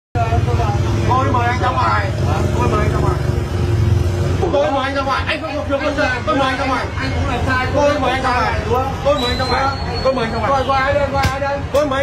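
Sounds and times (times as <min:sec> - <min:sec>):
vehicle engine humming: 0:00.2 - 0:09.0.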